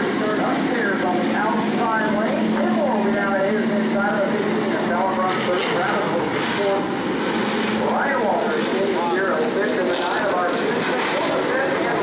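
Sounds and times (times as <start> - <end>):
racing car engines passing: 0.0 - 12.0.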